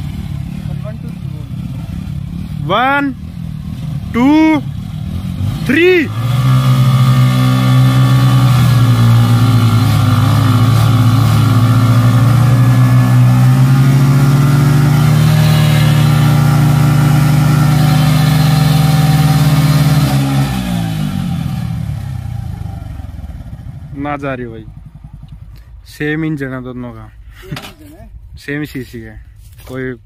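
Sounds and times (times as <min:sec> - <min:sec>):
motorcycle engines revving high: 0:00.0 - 0:26.7.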